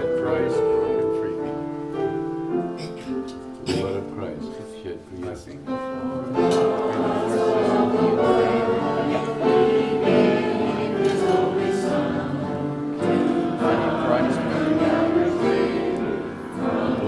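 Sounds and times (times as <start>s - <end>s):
piano: 0.0s - 17.0s
choir and congregation singing hymn: 5.7s - 17.0s.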